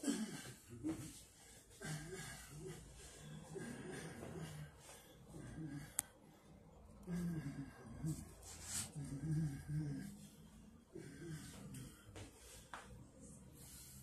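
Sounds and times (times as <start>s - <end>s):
breathing: 0.3s - 14.0s.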